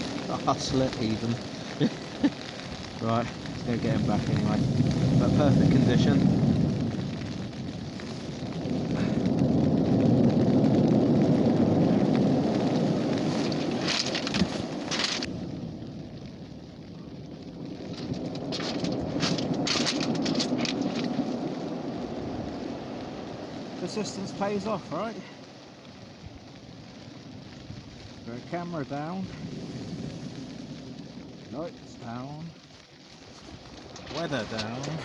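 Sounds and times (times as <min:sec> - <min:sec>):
waves breaking on shingle: 0:00.0 - 0:15.6, 0:17.8 - 0:25.6, 0:32.0 - 0:35.0
pebbles rattling: 0:17.9 - 0:21.2.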